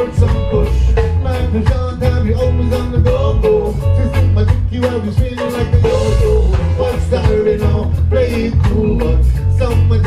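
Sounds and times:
live reggae band playing: 0.0 - 10.0
person singing: 0.0 - 10.0.

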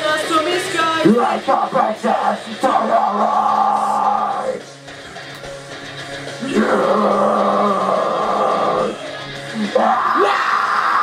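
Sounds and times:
electric guitar chords: 1.9 - 11.0.

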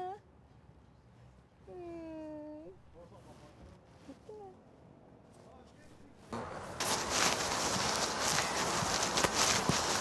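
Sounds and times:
woman humming hmm: 1.7 - 2.8.

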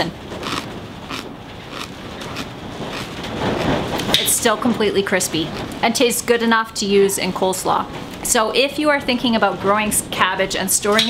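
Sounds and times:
cabbage crunching while chewed: 0.4 - 3.2.

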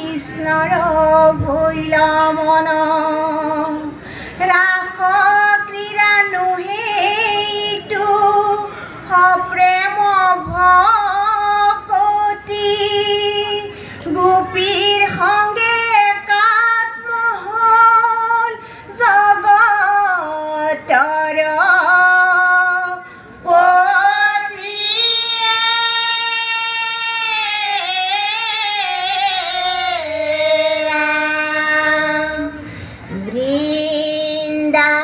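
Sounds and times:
women singing a devotional chant: 0.0 - 35.0.

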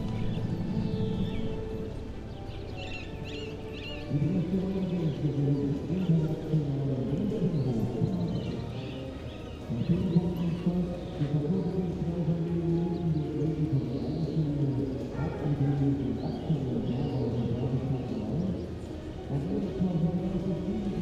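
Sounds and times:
instrumental music: 0.0 - 13.9.

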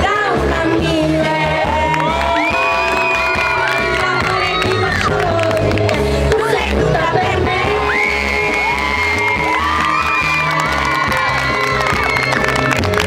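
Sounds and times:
pop backing track over loudspeakers: 0.0 - 13.0
audience shouting and cheering: 1.3 - 5.7, 7.6 - 13.0.

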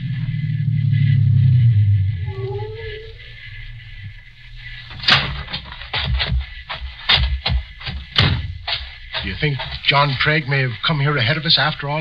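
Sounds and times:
faint whine: 0.0 - 12.0.

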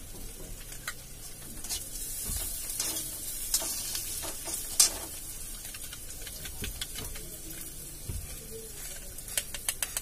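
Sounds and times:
oil sizzling in a wok: 0.0 - 10.0.

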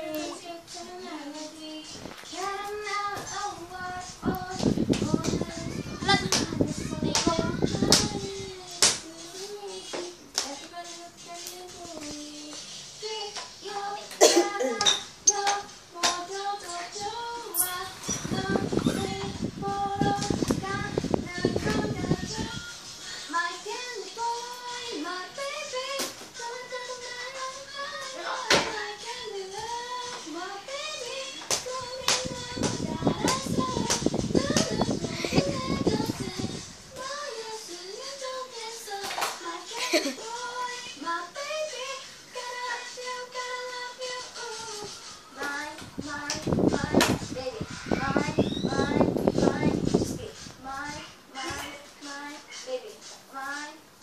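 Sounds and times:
child singing: 0.0 - 53.9.

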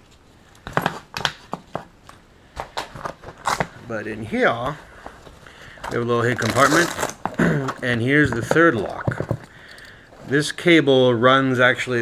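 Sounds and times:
nylon bag rustling: 5.8 - 9.1.

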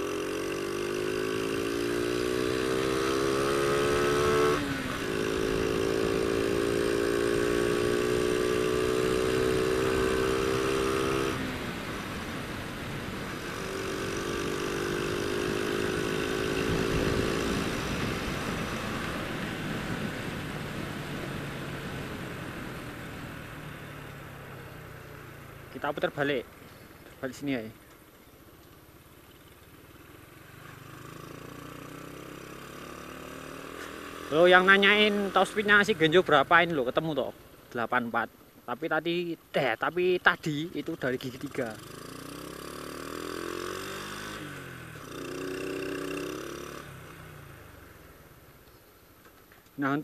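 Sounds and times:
motorcycle engine accelerating: 0.0 - 37.4, 40.3 - 49.4.

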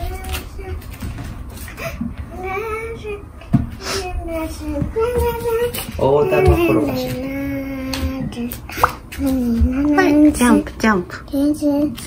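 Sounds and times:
child singing wordlessly: 0.0 - 0.9, 2.3 - 3.4, 4.0 - 10.4.

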